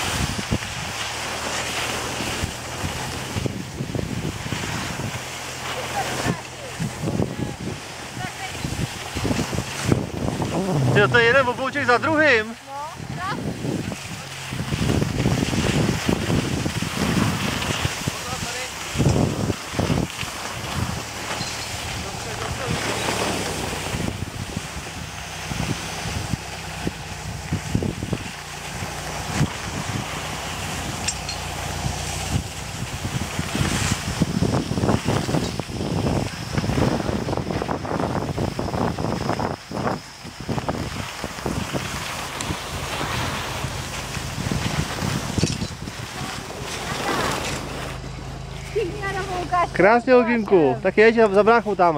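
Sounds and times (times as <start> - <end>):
skis sliding on snow: 0.0 - 51.9
wind buffeting microphone: 0.0 - 51.9.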